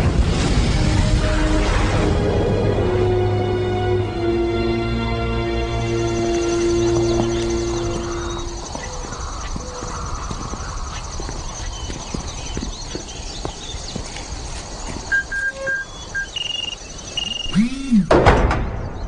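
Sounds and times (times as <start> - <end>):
short high chirps: 15.1 - 18.1.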